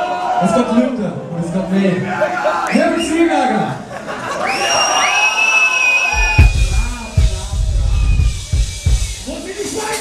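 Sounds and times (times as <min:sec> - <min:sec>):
heavy kick drum and bass hits: 0:06.2 - 0:09.4.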